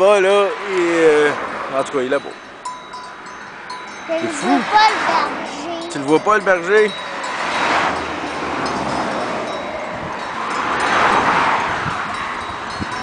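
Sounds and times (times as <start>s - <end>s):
sheep bells tinkling: 2.1s - 13.0s.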